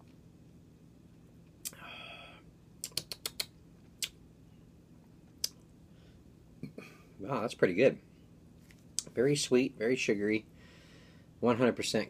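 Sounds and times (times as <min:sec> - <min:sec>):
lip-smacking clicks: 0:02.8 - 0:04.2, 0:05.4 - 0:05.6.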